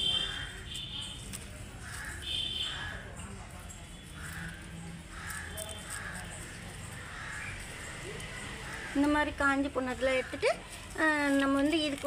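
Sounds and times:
distant birds calling: 0:03.9 - 0:11.0.

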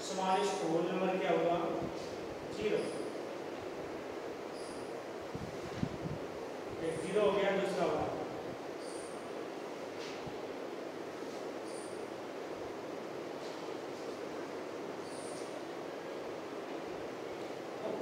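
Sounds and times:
outdoor ambience hiss: 0:00.0 - 0:18.0.

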